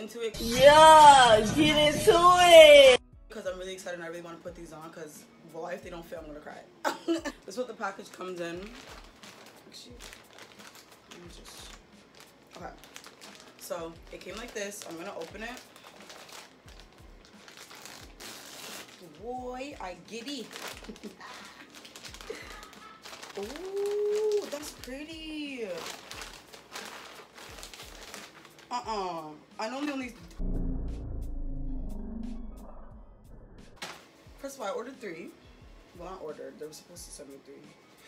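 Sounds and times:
plastic mailer bag crinkling: 8.4 - 29.0.

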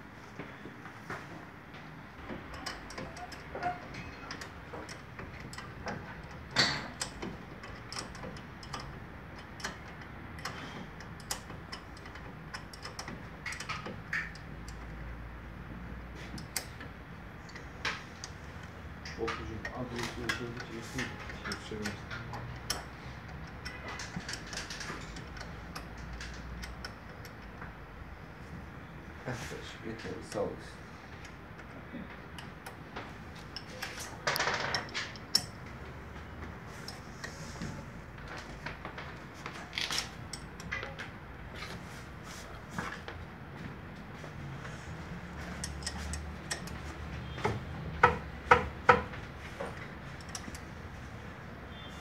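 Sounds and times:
metallic clicks and knocks on brake: 2.2 - 15.1, 16.2 - 27.8, 29.9 - 41.2, 45.5 - 50.8.

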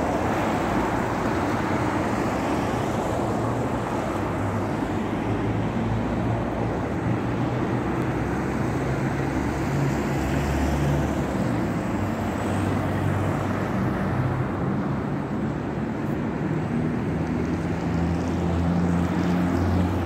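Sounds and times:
road traffic: 0.0 - 20.0
vehicle engine hum passing: 0.0 - 20.0.

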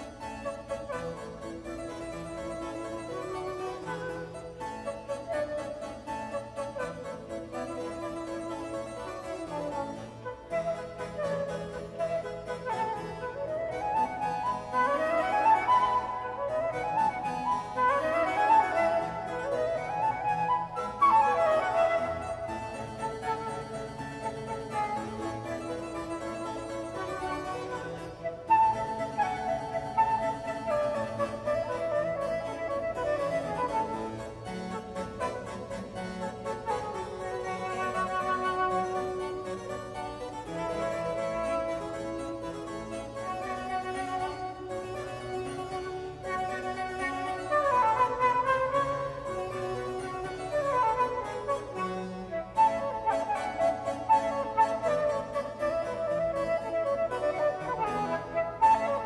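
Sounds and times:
flute: 0.0 - 59.0
harpsichord: 0.0 - 59.0.

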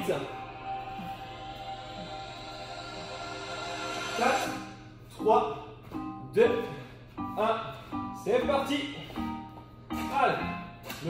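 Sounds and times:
background music with chords: 0.0 - 11.0.

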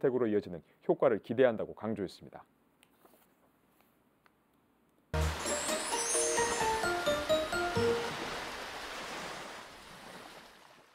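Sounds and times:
rushing surf-like water: 5.2 - 10.9.

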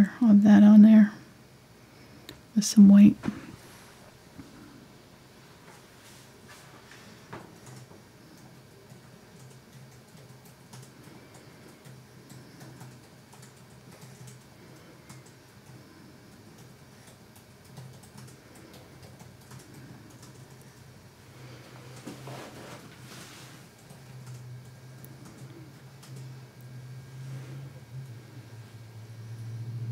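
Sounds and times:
low steady hum: 0.0 - 29.9.

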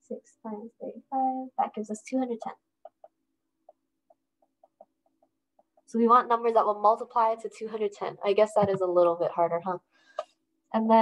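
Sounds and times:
stylus ticking on glass screen: 2.2 - 6.0.

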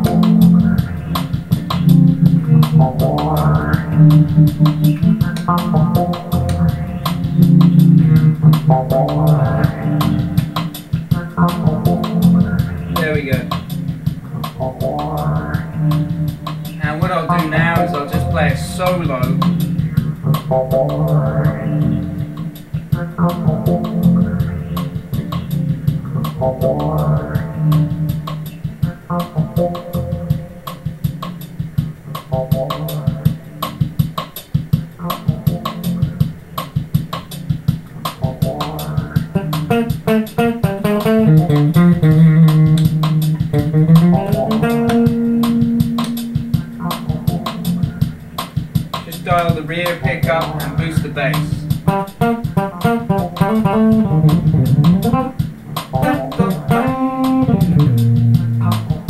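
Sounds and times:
electric bass line: 0.0 - 59.0
steady drum beat: 0.0 - 59.0.

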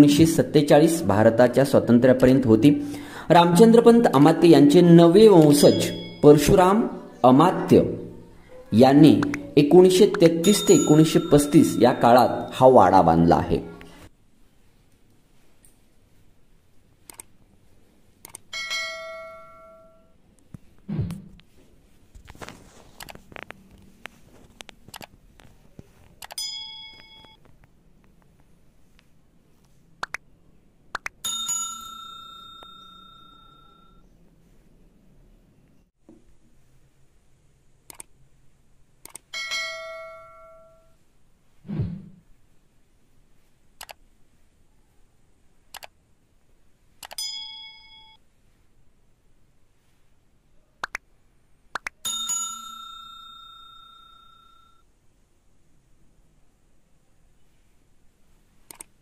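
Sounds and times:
bell ding: 5.4 - 6.6, 10.3 - 12.6, 18.6 - 20.1, 26.4 - 27.4, 31.2 - 34.0, 39.4 - 40.9, 47.2 - 48.2, 52.0 - 54.8
short ding: 5.6 - 6.3, 10.5 - 11.8
mouse clicks: 9.2 - 9.5, 37.9 - 38.1, 45.7 - 45.9, 58.7 - 58.9.

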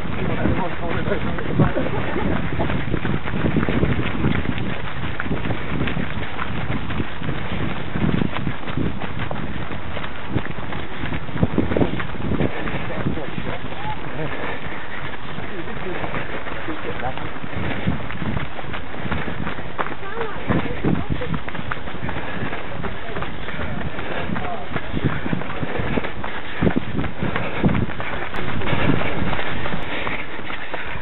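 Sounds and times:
wind rushing over microphone: 0.0 - 31.0.

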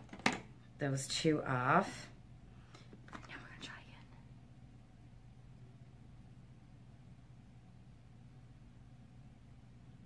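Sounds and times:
woman whispering: 3.1 - 4.3.

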